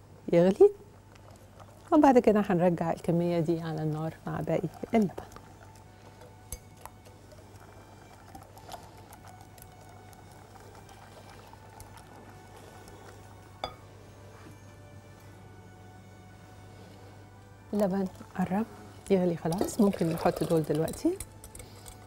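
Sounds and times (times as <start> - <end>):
faint background music: 0.0 - 22.0
low steady hum: 0.0 - 22.0
whisk stirring liquid in bowl: 3.6 - 13.3, 19.4 - 22.0.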